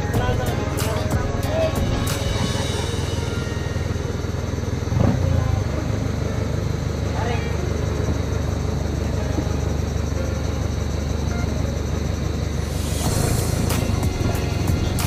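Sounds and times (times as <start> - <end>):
boat engine droning: 0.0 - 15.0
voices: 0.0 - 15.0.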